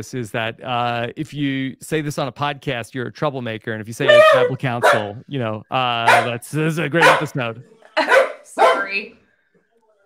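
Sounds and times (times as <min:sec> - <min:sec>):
dog barking: 0:04.1 - 0:05.2, 0:06.0 - 0:06.4, 0:07.0 - 0:07.4, 0:08.0 - 0:09.0.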